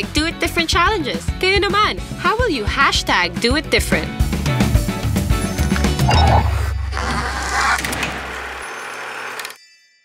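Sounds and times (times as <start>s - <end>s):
high bell-like tones: 8.6s - 10.0s.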